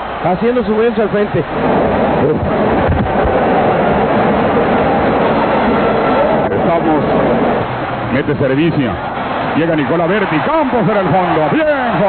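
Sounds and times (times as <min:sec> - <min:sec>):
stadium crowd noise on television: 0:00.0 - 0:12.0.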